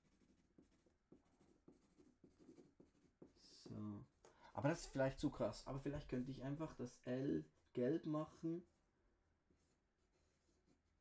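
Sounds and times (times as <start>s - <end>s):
pencil scratching on paper: 0.0s - 3.7s, 8.2s - 11.0s.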